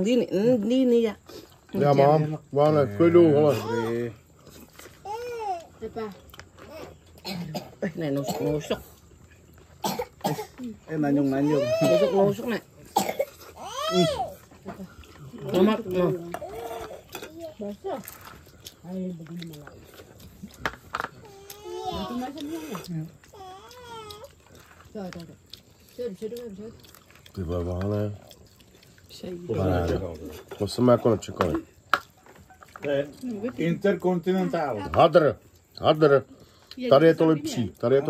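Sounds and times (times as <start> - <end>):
baby babbling: 23.4 - 24.3.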